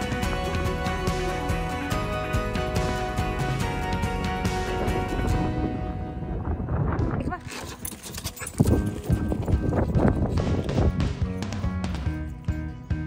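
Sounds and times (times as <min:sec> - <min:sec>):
background music: 0:00.0 - 0:13.0
dogs scuffling and knocking: 0:07.4 - 0:12.7
dogs yipping: 0:07.4 - 0:12.8.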